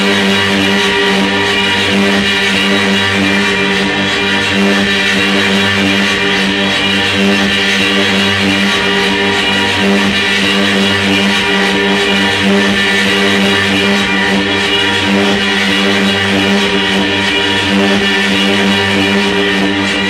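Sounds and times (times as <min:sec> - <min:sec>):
electronic drone of low tones: 0:00.0 - 0:20.0.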